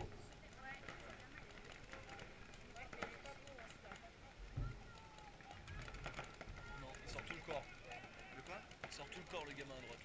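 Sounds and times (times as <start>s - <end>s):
faint voices talking: 0.0s - 10.0s.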